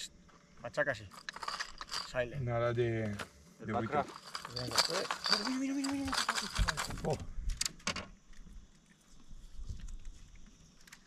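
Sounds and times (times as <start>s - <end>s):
fishing lures clinking in tray: 1.1s - 2.2s, 3.8s - 7.2s.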